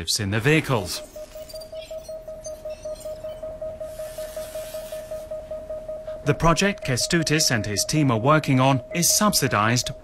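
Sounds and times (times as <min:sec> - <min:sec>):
pulsing electronic tone: 0:00.5 - 0:10.0.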